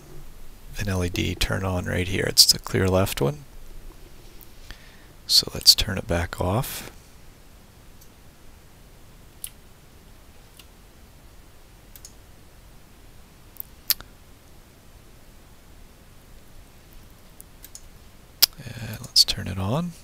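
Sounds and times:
computer mouse clicks: 11.9 - 12.2, 17.6 - 19.2.

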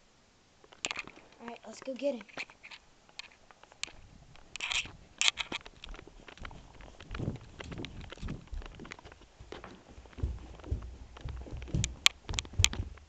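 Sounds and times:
handheld camera knocks and rustle: 2.2 - 13.0
footsteps: 3.8 - 13.0
heavy low thuds of steps: 4.9 - 13.0.

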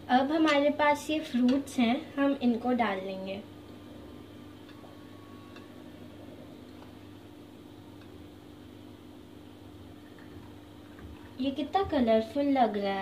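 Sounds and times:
low hum: 1.3 - 11.3.

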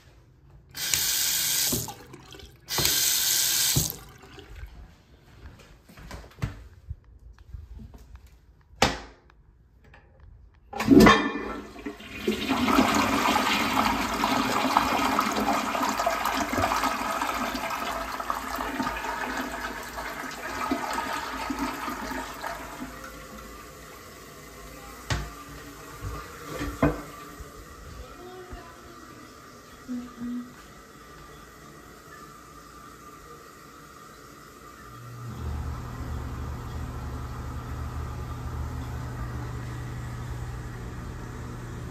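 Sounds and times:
water rushing through toilet bowl: 0.8 - 5.0, 10.8 - 27.8
toilet flush lever clack: 10.8 - 12.0.

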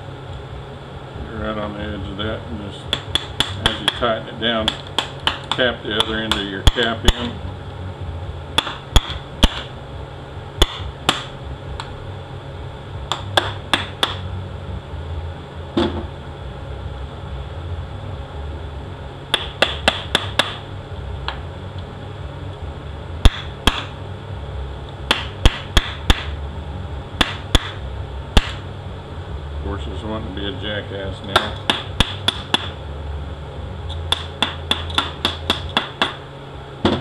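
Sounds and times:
steady low hum: 0.0 - 37.0
hammer tapping on metal: 2.9 - 4.0, 8.6 - 9.7, 10.6 - 11.3, 13.1 - 14.2, 19.3 - 20.6, 31.3 - 32.8, 34.1 - 36.2.

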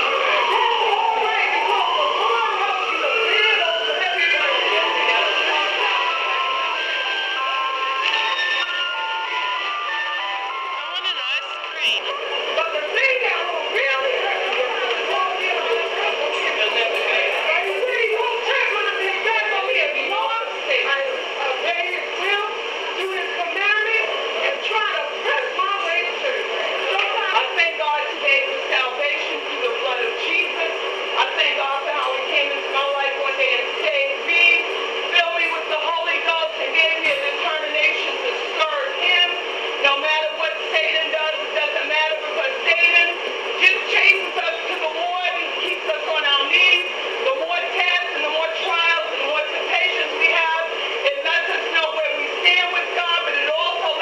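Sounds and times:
people talking over one another: 0.0 - 6.8, 10.6 - 54.0.

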